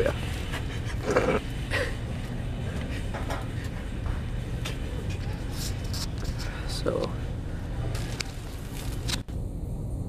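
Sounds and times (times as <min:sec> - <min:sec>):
low background hum: 0:00.0 - 0:10.0
man laughing breathily: 0:00.6 - 0:02.2.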